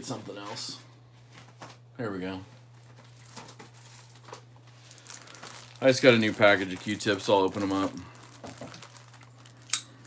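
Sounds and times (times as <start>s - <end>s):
loud packaging crackle: 2.7s - 10.0s
packaging crinkling: 2.7s - 10.0s.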